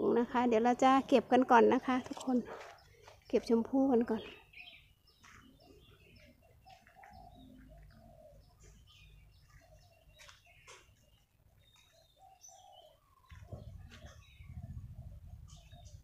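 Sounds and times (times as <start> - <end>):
small birds chirping: 0.0 - 16.0
dove cooing: 5.5 - 10.8, 11.6 - 16.0.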